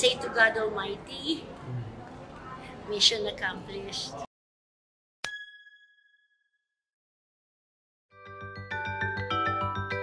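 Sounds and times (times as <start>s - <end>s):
bell-like ding: 5.2s - 6.8s.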